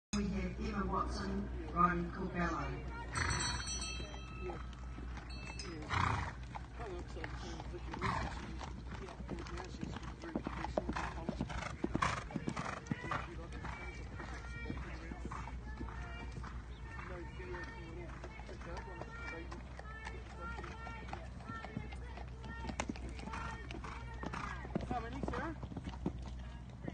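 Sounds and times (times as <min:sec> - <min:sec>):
horse hoofbeats on sand: 0:03.1 - 0:26.9.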